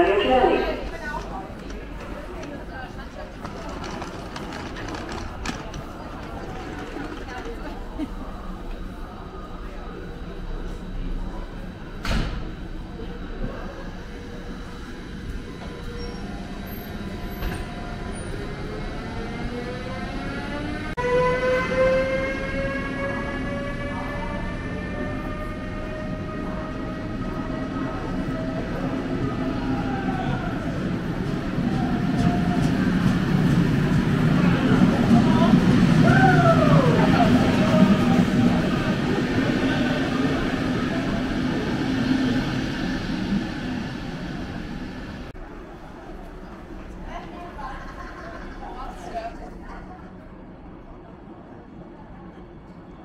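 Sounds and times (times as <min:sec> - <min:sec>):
electric locomotive whine: 0:00.0 - 0:47.4
train wheels rumbling: 0:00.0 - 0:49.4
train wheel squeal: 0:15.6 - 0:18.4.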